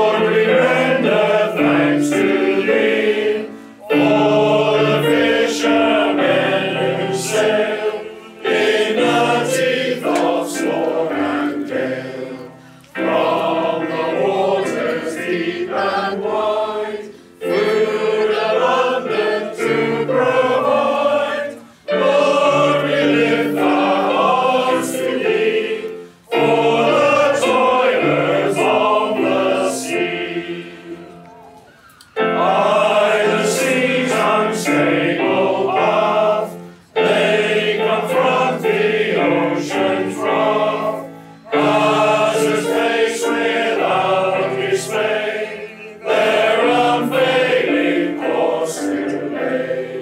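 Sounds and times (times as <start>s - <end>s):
male choir singing a hymn: 0.0s - 31.6s, 32.2s - 50.0s
keyboard accompaniment: 0.0s - 50.0s.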